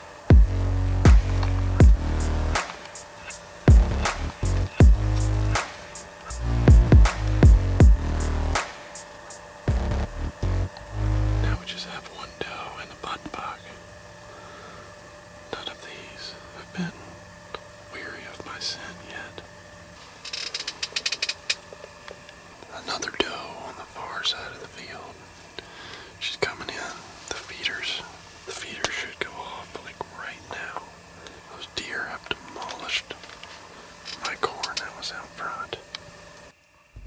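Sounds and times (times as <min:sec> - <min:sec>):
run of sharp clicks: 0:02.6 - 0:03.4
man whispering: 0:11.4 - 0:13.8, 0:15.5 - 0:17.1, 0:17.9 - 0:19.5, 0:22.7 - 0:25.3, 0:26.2 - 0:33.2, 0:34.1 - 0:35.9.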